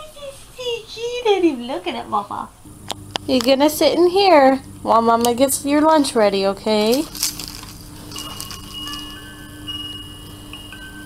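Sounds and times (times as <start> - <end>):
steady low hum: 0.0 - 11.0
electronic chime notes: 7.9 - 11.0.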